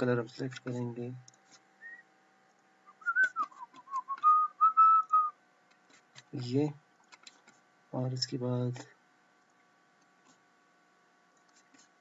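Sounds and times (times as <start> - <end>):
person whistling a tune: 2.9 - 5.4.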